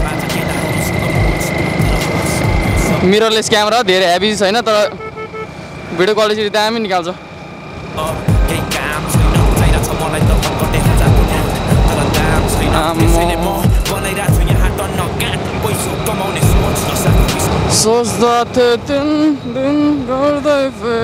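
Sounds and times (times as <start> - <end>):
person singing: 8.0 - 17.5.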